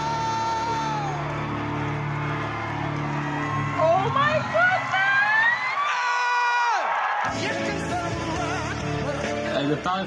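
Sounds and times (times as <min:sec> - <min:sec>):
crowd cheering and clapping: 0:00.0 - 0:08.8.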